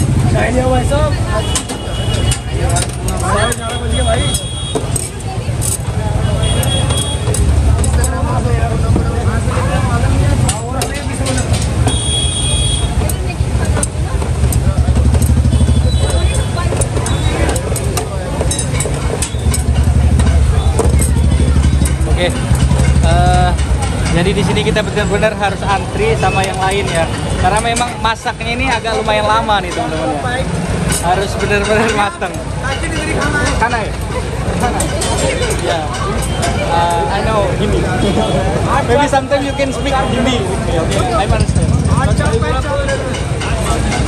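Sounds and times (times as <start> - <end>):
many voices talking: 0.0 - 44.0
traffic engine rumble: 0.0 - 44.0.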